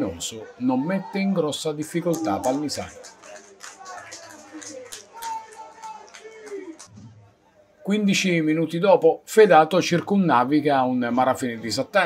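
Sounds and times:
players shouting and calling: 0.0 - 7.8
sparse crowd: 0.0 - 8.4.

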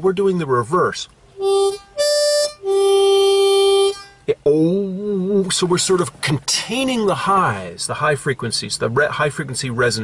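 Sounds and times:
blues harmonica notes: 1.3 - 5.4.

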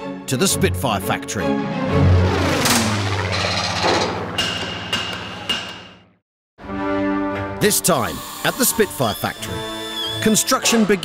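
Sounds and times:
sharp clicks and knocks: 2.6 - 6.0.

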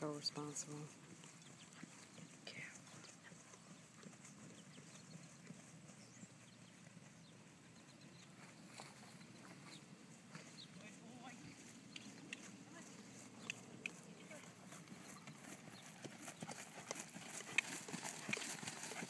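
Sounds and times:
soft hoofbeats on grass: 0.0 - 19.0.

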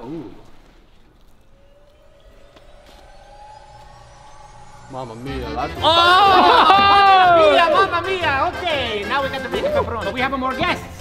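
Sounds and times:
faint rising tone: 0.8 - 6.7.

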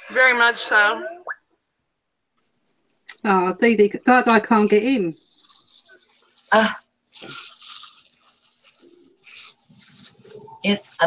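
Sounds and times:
paper crinkling and rustling: 4.4 - 11.0.

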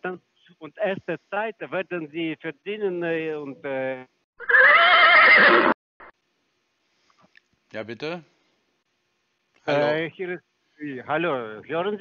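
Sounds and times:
horse whinnying: 4.4 - 5.8.

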